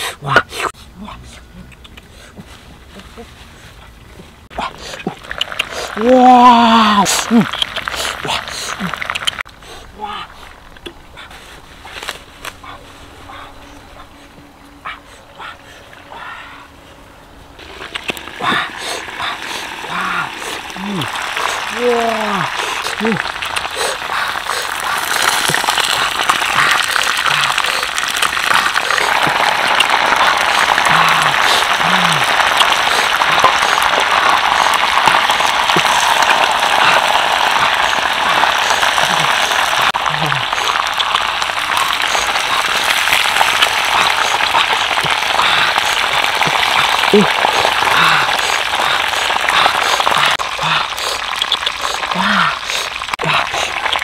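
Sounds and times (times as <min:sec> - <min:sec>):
low voice-like grunts: 0:00.0 - 0:03.3, 0:18.4 - 0:23.4, 0:26.0 - 0:40.8, 0:43.8 - 0:51.0, 0:52.0 - 0:53.8
dense crackling hiss: 0:00.0 - 0:54.0.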